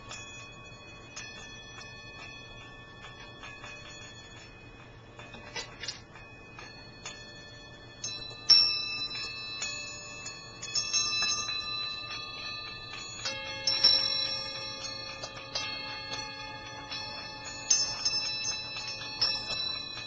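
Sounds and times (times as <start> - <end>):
small metal bells ringing: 0.0 - 20.0.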